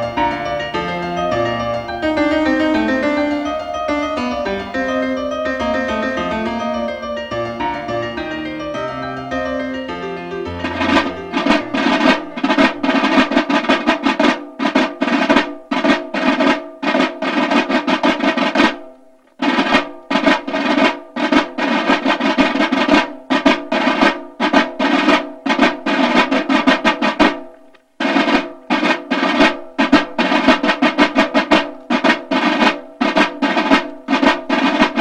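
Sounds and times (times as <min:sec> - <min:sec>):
side drums marching roll: 0:00.0 - 0:35.0.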